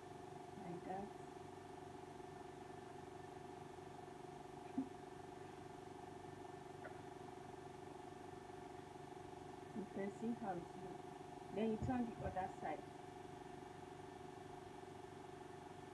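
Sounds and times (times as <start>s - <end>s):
faint low hum: 0.0s - 15.9s.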